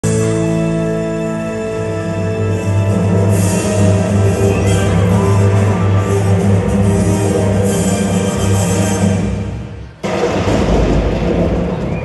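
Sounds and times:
loud boom with rumble: 10.0 - 12.0.

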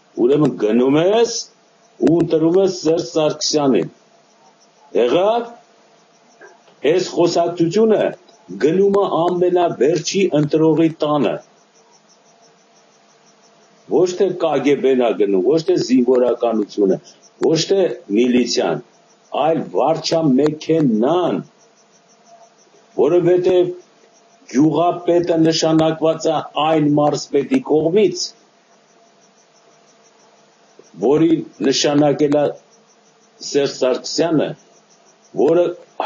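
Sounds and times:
faint high-pitched pulsing: 0.0 - 36.0
faint steady hum: 0.0 - 36.0
low background hiss: 0.0 - 36.0.

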